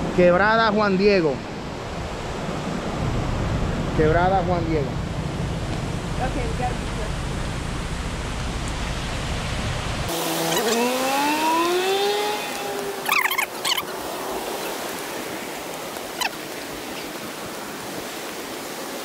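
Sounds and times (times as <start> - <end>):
low rumble: 2.8 - 10.1
creek water flowing: 5.8 - 19.0
rising held tone: 10.1 - 13.9.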